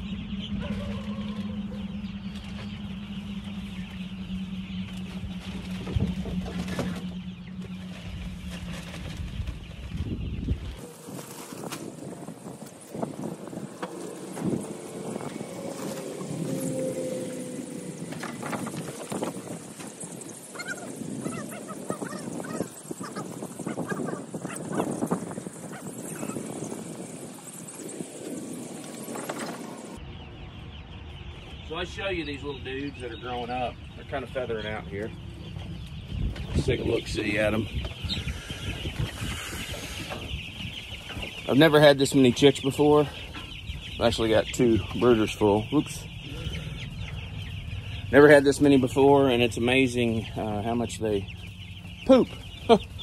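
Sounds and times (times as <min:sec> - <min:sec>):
low steady rumble: 0:00.0 - 0:20.9
chicks peeping: 0:00.0 - 0:53.0
wood shavings rustling: 0:10.8 - 0:21.2
poultry honking or quacking: 0:20.5 - 0:25.0.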